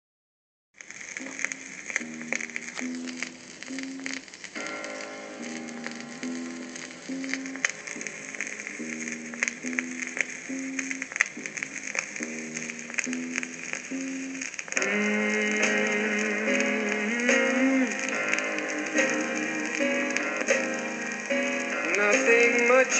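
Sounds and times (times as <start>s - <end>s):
instrumental song from a record: 0.8s - 22.9s
record crackle and pops: 0.8s - 22.9s.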